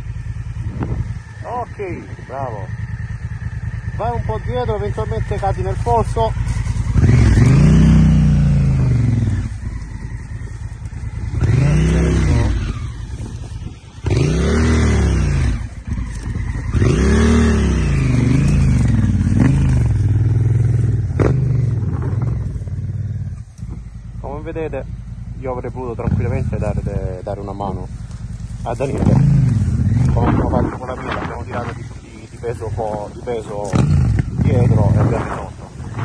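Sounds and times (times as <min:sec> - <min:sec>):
motorcycle engine revving: 0:00.0 - 0:36.0.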